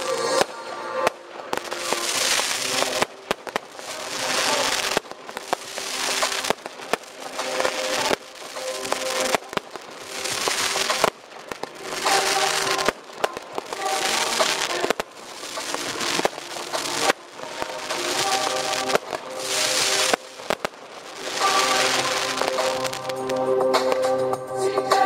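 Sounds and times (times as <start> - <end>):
fireworks bangs and crackle: 0.0 - 24.3
hissing of fireworks: 0.0 - 25.0
loud music: 0.0 - 25.0.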